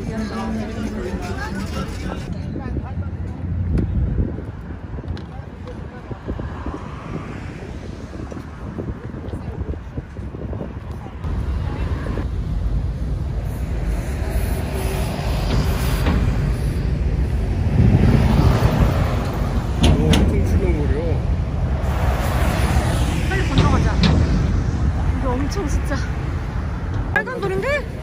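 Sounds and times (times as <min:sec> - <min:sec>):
heavy traffic rumble: 0:00.0 - 0:28.0.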